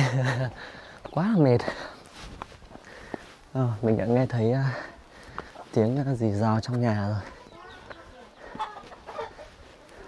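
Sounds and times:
chicken clucks: 4.9 - 10.0.

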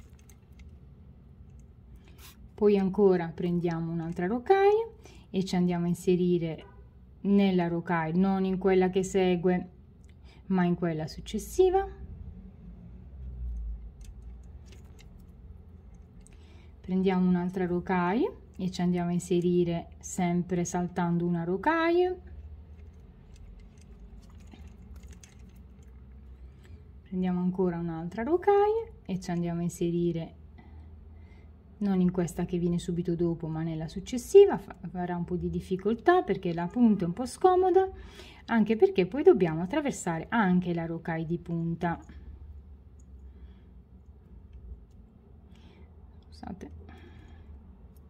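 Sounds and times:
low steady hum: 0.0 - 48.0.

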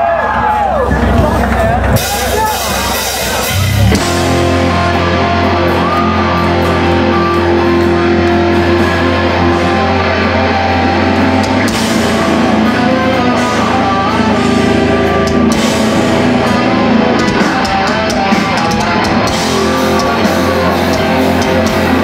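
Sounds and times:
metalcore band playing: 0.3 - 22.0
distorted electric guitars: 0.6 - 22.0.

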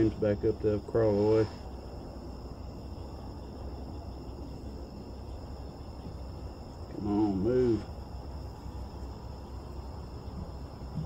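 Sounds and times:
crickets trilling: 0.0 - 11.0
low background rumble: 0.0 - 11.0.

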